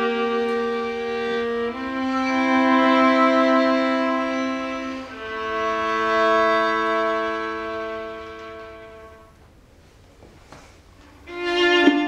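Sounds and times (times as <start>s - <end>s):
violin and viola sustained chord: 0.0s - 9.3s, 11.2s - 12.0s.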